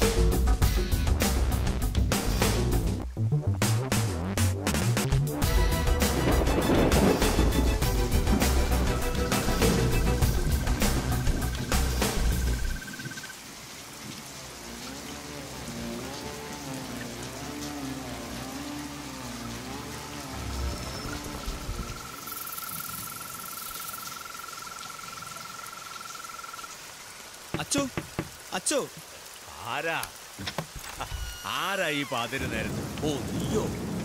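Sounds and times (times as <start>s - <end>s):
dark film score: 0.0s - 26.8s
heavy rain falling: 0.0s - 34.0s.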